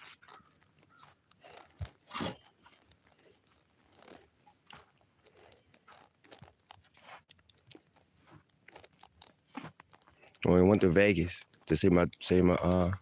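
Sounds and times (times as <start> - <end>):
person chewing crunchy food: 0.0 - 10.4.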